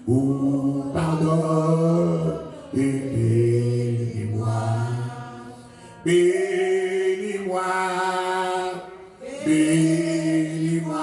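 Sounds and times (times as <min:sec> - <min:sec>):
man singing a hymn: 0:00.0 - 0:11.0.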